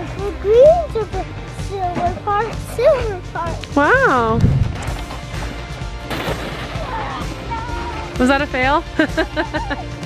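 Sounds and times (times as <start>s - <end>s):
background music: 0.0s - 10.0s
sled impact and scraping: 4.5s - 7.2s.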